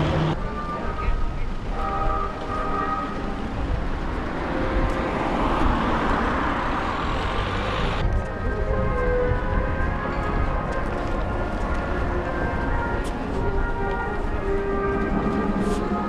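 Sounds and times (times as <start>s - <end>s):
faint music: 0.0s - 6.2s, 8.0s - 16.0s
vehicle driving past: 4.2s - 8.0s.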